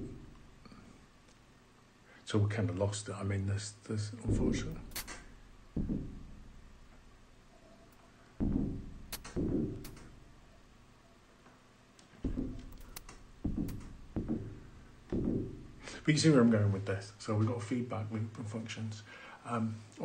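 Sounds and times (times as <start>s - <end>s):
synthesizer drum thuds: 4.3s - 7.4s, 8.4s - 10.4s, 12.2s - 15.9s.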